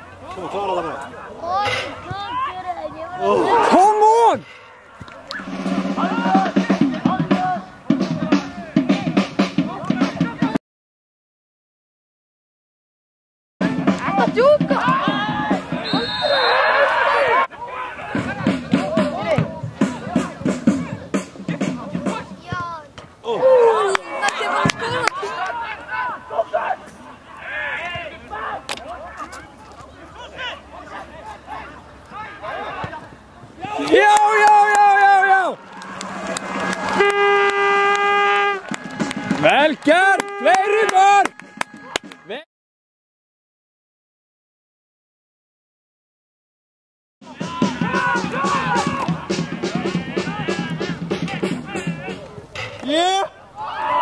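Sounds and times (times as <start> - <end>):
people shouting: 0.8 - 8.8, 14.0 - 20.9, 23.2 - 29.2, 30.2 - 33.0, 33.6 - 42.4, 47.2 - 52.2, 52.8 - 54.0
steady drum beat: 5.4 - 10.6, 13.6 - 16.1, 18.1 - 22.5, 35.8 - 42.3, 47.2 - 52.4.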